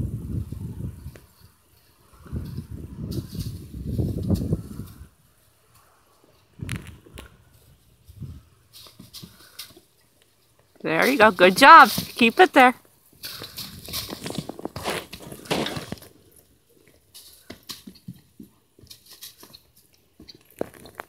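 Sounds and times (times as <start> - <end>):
wind gusts on microphone: 0.0 - 5.2, 6.5 - 8.6
plastic flag crackling: 10.8 - 16.2.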